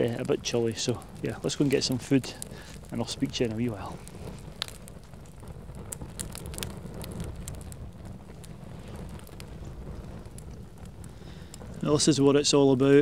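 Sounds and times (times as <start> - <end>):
faint crackles and ticks: 0.0 - 13.0
wind buffeting microphone: 0.0 - 13.0.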